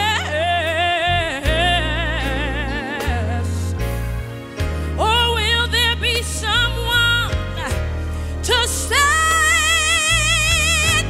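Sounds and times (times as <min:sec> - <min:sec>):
person singing with vibrato: 0:00.0 - 0:03.8
low bass notes: 0:00.0 - 0:11.0.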